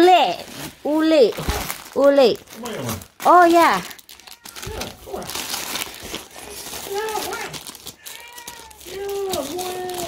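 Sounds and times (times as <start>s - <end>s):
cat meowing: 4.1s - 5.1s, 7.1s - 10.0s.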